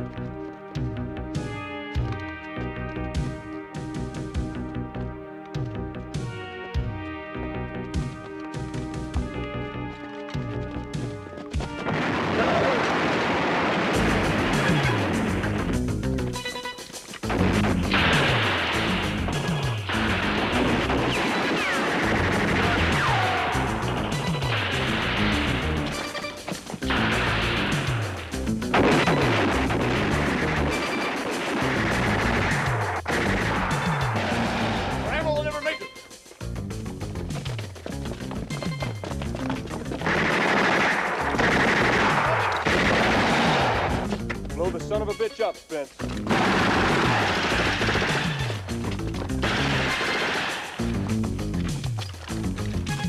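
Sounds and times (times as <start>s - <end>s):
action music: 0.0s - 53.0s
automatic rifle fire: 11.8s - 15.0s, 17.4s - 23.6s, 40.0s - 44.1s, 46.3s - 48.6s, 49.4s - 50.8s
crashing impacts: 17.2s - 35.1s, 46.0s - 52.3s.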